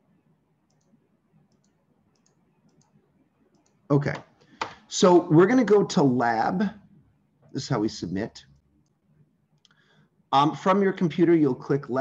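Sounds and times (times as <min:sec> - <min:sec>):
computer mouse clicks: 0:00.7 - 0:04.8
man talking: 0:03.9 - 0:04.3, 0:04.9 - 0:06.8, 0:07.6 - 0:08.5, 0:10.3 - 0:12.0.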